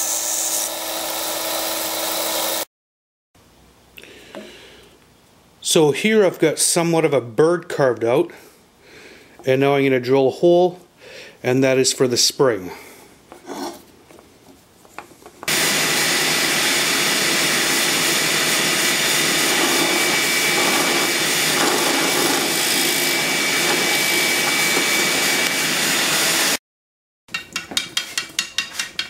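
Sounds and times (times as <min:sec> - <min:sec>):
drill press boring into wood: 0:00.0 - 0:02.6, 0:15.5 - 0:26.6.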